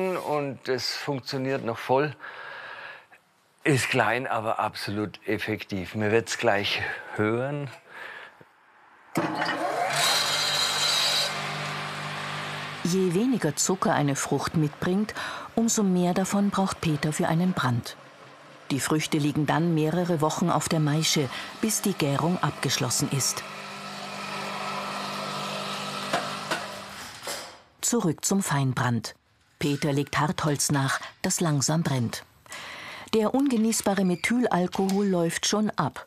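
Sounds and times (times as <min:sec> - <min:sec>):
electric fruit mill motor hum: 0:09.2 - 0:27.3.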